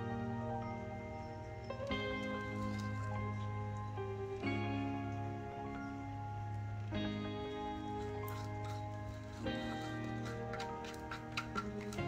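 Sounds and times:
soft sustained chords: 0.0 - 12.0.

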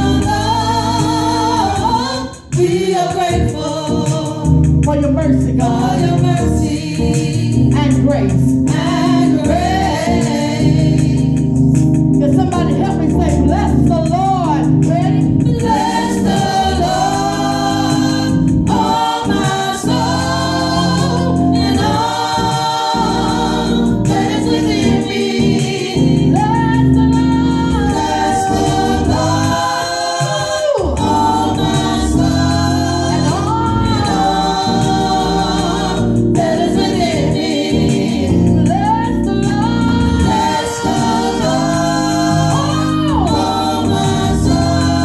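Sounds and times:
choir singing gospel: 0.0 - 45.0
keyboard accompaniment: 0.0 - 45.0.

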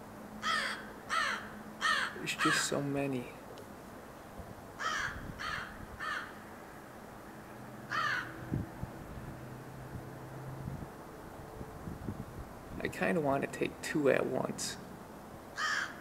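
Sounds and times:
crow cawing: 0.4 - 2.7, 4.8 - 6.4, 7.9 - 8.4, 15.6 - 16.0.

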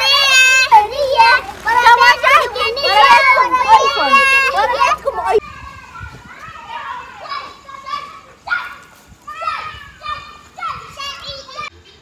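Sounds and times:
children calling out and talking: 0.0 - 12.0
distant children's voices: 0.0 - 12.0.

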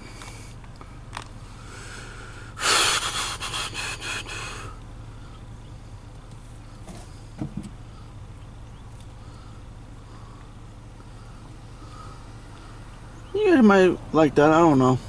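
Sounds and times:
loud breath close to microphone: 1.4 - 5.5, 9.2 - 13.1.

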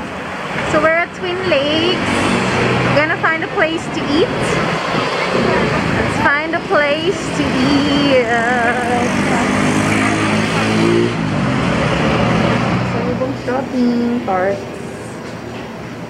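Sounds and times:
engine-like hum rising in pitch: 0.0 - 16.0
motor vehicle noise: 0.0 - 16.0
people's voices: 0.7 - 2.1, 2.9 - 11.3, 12.8 - 15.4.

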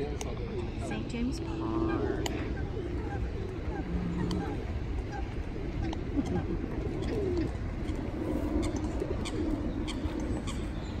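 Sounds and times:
pigeons cooing: 0.0 - 11.0.

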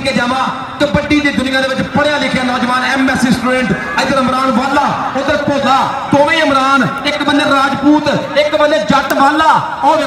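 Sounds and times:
man giving commentary: 0.0 - 10.0.

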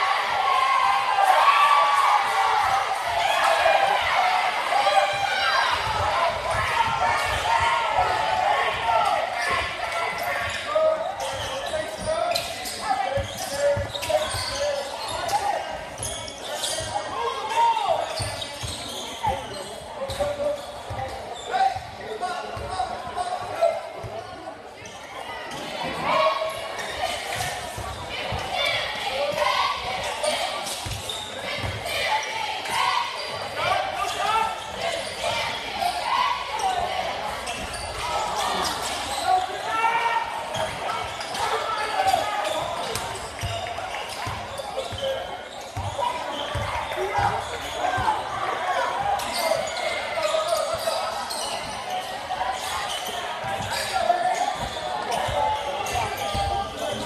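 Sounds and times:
voices calling out in gym: 0.0 - 57.0.

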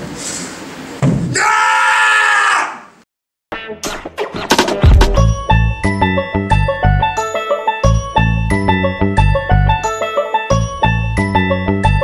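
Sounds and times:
person screaming: 1.3 - 3.0.

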